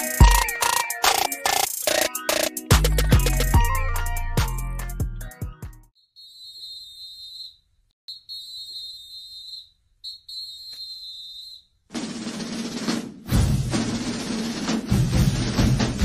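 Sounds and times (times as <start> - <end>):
loud drum-heavy music: 0.0 - 5.8, 11.9 - 16.0
music with drum hits: 0.0 - 5.8, 11.9 - 16.0
high whistle blasts: 6.5 - 11.8.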